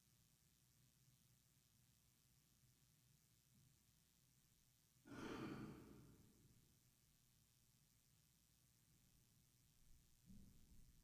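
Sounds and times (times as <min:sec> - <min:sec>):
sigh-like exhale: 0:05.1 - 0:06.2.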